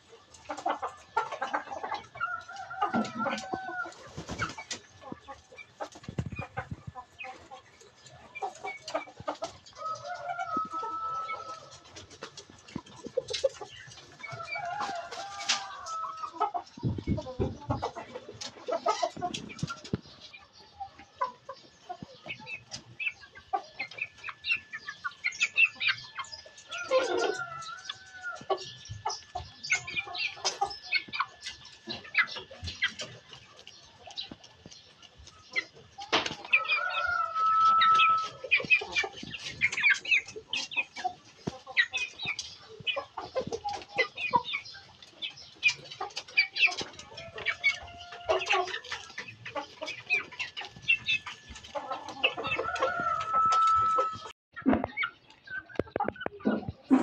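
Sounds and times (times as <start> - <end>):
chickens clucking: 0.0 - 57.0
drawn-out chicken calls: 0.0 - 57.0.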